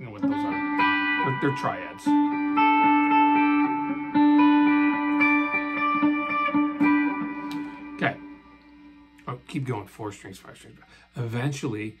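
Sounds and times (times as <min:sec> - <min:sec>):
electric guitar chords: 0:00.0 - 0:09.5.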